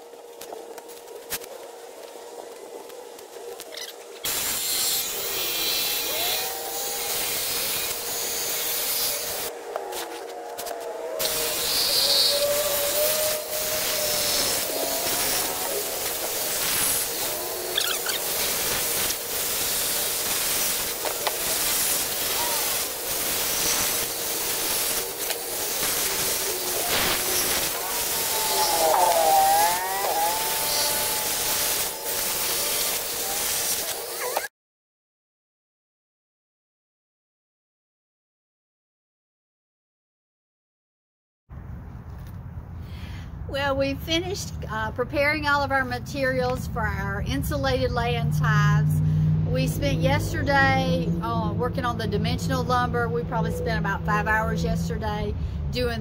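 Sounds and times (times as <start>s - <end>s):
jigsaw cutting plywood: 11.2s - 34.5s.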